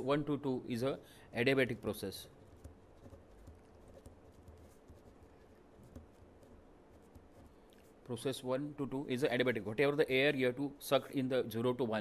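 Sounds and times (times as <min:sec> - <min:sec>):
marker pen scratching on paper: 0:01.8 - 0:08.2.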